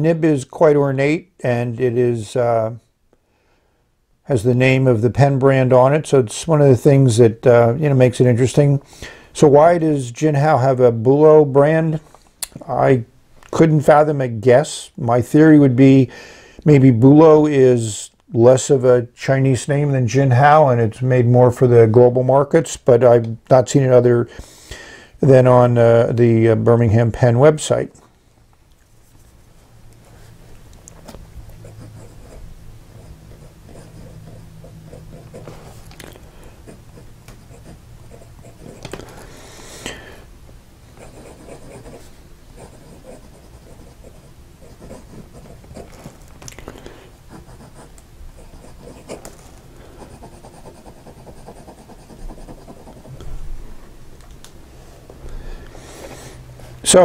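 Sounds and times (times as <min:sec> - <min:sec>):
pen nib scratching on paper: 0:31.5 - 0:36.0, 0:36.6 - 0:39.1, 0:41.0 - 0:46.2, 0:47.3 - 0:53.3.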